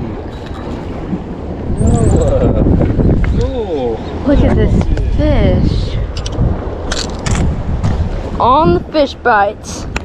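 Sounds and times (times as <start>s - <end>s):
wind buffeting microphone: 0.0s - 10.0s
voices: 1.8s - 6.2s, 8.4s - 9.9s.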